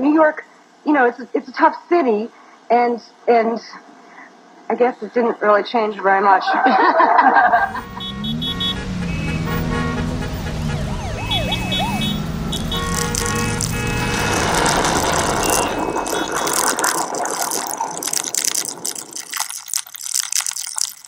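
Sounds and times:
low engine hum: 7.5s - 17.2s
fast warbling alarm: 7.5s - 19.3s
high beeping tones: 7.6s - 18.9s
dense crackling clicking noise: 9.3s - 21.0s.

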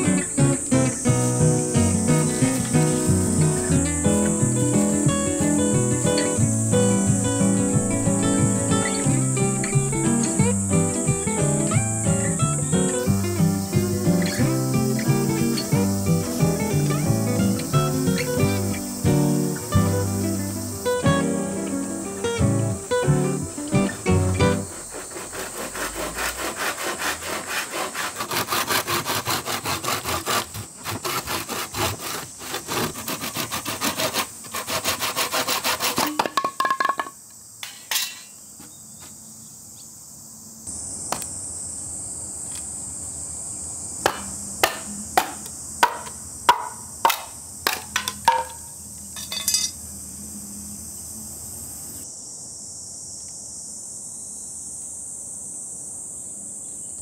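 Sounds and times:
insects buzzing high-pitched: 0.0s - 57.0s
hand saw cutting bamboo: 24.4s - 36.2s
sharp knocks splitting bamboo: 44.0s - 48.6s.

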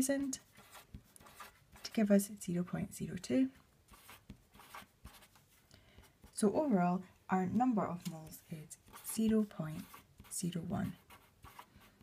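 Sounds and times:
felt-tip pen writing on paper: 0.6s - 1.9s, 3.9s - 5.3s.

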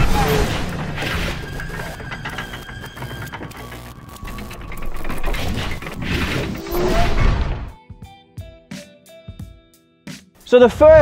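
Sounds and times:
mechanical clicks and ticks: 0.0s - 7.3s.

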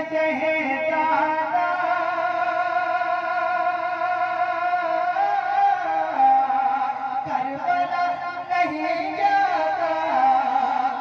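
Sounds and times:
man singing through a microphone: 0.0s - 11.0s.

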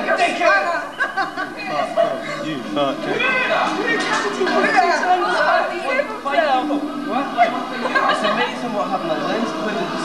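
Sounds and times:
young people chattering: 0.0s - 10.0s.

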